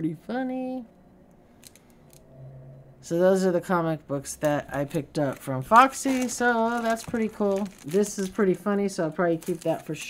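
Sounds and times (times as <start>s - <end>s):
faint low hum: 0.0s - 10.0s
plastic bag crinkling: 4.4s - 10.0s.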